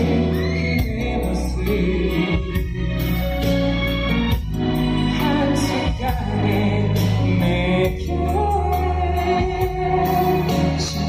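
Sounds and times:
man singing a ballad: 0.0 - 3.6, 5.0 - 11.0
backing track with drum beat: 0.0 - 11.0.

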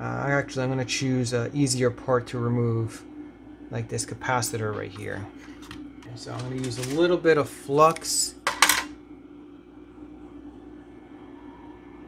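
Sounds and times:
hot-air gun fan whirring: 0.0 - 12.0.

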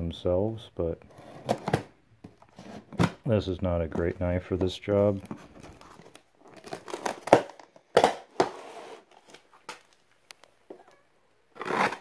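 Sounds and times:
knife cutting cardboard: 11.6 - 12.0.

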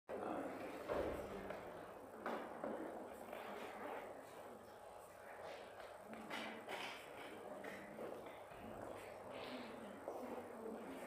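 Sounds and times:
faint distant talking: 0.1 - 11.0.

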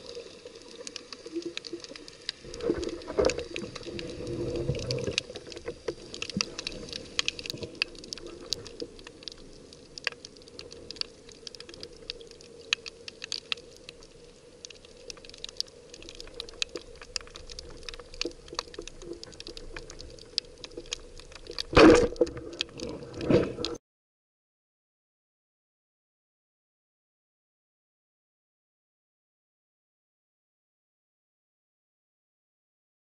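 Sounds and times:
rush of water and bubbles: 0.0 - 23.8.

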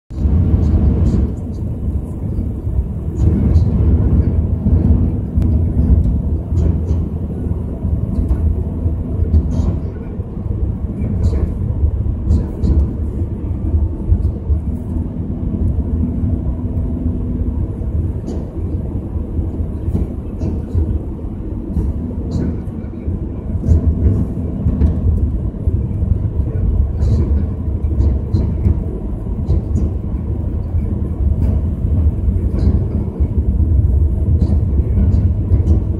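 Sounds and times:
vehicle driving on highway: 0.1 - 35.9.

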